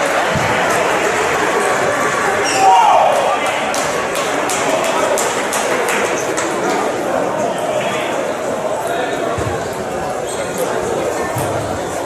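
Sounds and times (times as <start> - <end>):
voices and chatter: 0.0 - 12.0.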